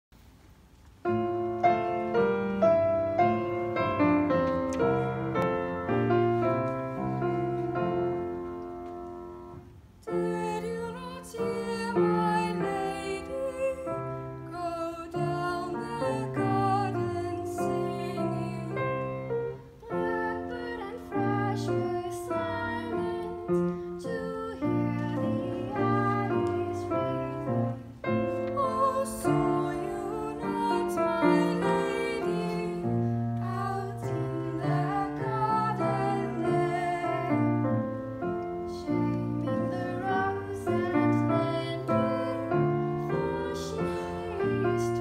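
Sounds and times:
slow piano chords: 1.0 - 45.0
two girls singing a duet: 8.4 - 45.0.

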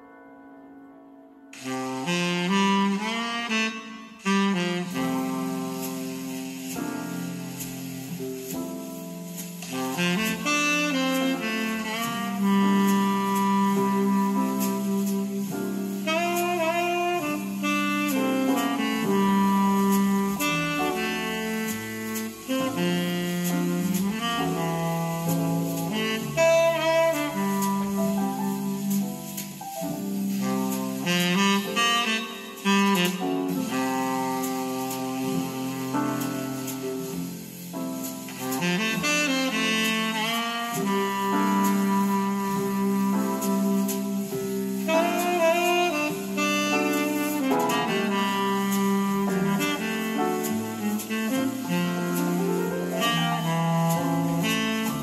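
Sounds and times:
jazz saxophone: 1.5 - 55.0.

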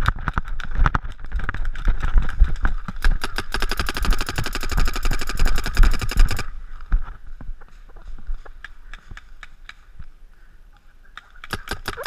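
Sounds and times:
paintball marker rapid firing: 2.0 - 6.5, 11.4 - 12.0.

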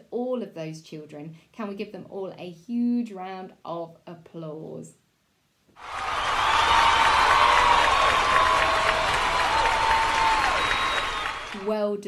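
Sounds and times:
audience applause: 5.8 - 11.7
audience cheering: 5.8 - 11.7.

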